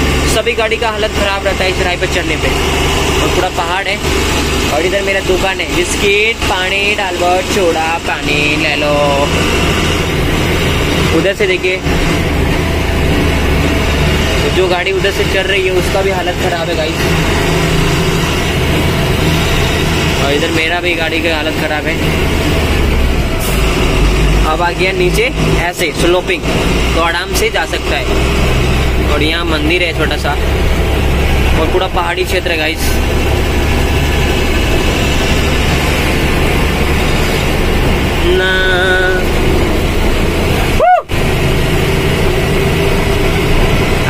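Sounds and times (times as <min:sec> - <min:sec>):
truck engine and road rumble: 0:00.0 - 0:44.0.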